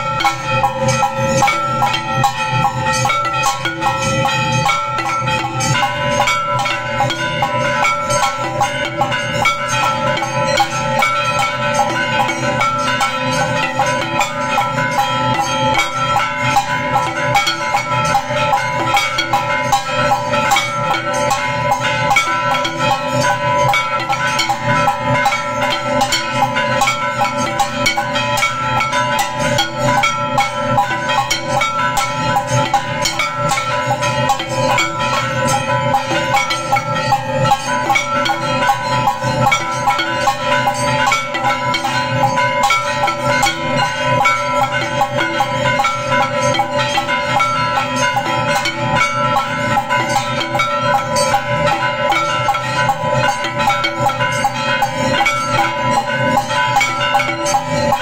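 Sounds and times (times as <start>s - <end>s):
drums beating rapidly: 0.0s - 58.0s
temple bells ringing: 0.0s - 58.0s.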